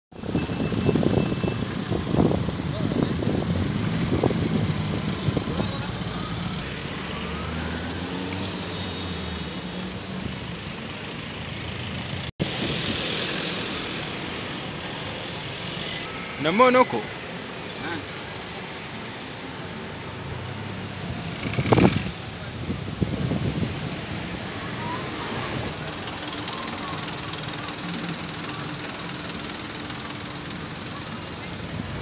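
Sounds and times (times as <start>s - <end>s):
road traffic: 0.1s - 32.0s
wind buffeting microphone: 0.2s - 6.0s, 21.1s - 24.5s
vehicle engine running: 18.2s - 22.6s, 25.0s - 32.0s.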